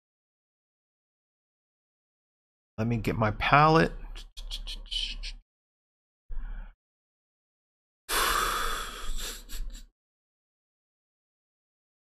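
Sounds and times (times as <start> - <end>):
noisy breath: 8.1 - 9.9.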